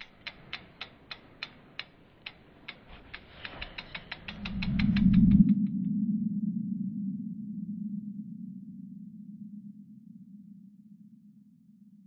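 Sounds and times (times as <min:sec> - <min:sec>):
ratchet-like clicks: 0:00.0 - 0:05.6
low rumble: 0:03.0 - 0:11.2.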